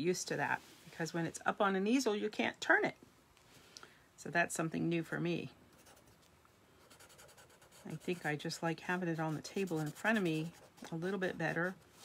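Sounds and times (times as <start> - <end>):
marker scratching on paper: 6.8 - 11.8.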